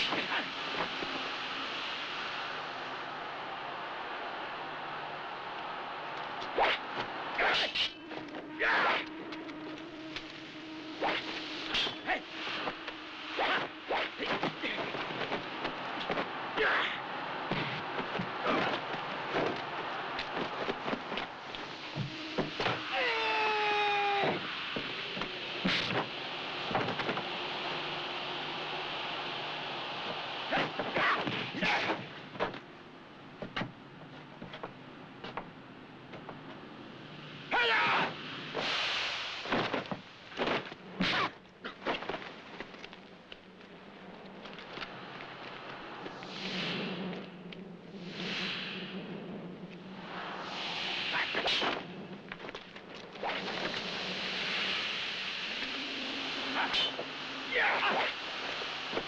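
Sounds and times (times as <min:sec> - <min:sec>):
film soundtrack hiss: 0:00.0 - 0:59.0
long cry: 0:02.6 - 0:10.1, 0:22.1 - 0:25.1, 0:37.5 - 0:38.2
fighters shouting and grunting: 0:06.5 - 0:07.9, 0:08.5 - 0:09.2, 0:13.3 - 0:15.0, 0:16.2 - 0:19.2, 0:30.5 - 0:32.1, 0:37.5 - 0:38.2, 0:57.5 - 0:58.2
punch blows and swishes: 0:40.4 - 0:41.4.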